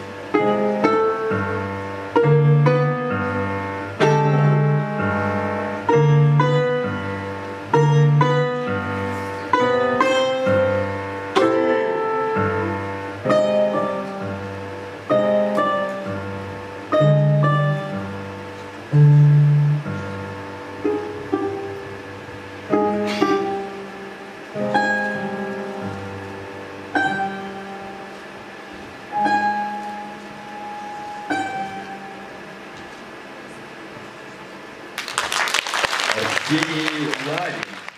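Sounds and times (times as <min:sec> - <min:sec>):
balalaika and piano chords: 0:00.0 - 0:33.8.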